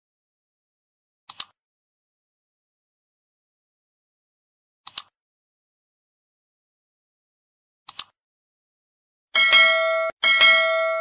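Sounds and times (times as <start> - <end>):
bell ding: 9.4 - 11.0.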